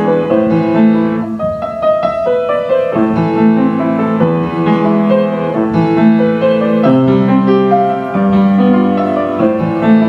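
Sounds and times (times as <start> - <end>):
upright piano playing chords: 0.0 - 10.0.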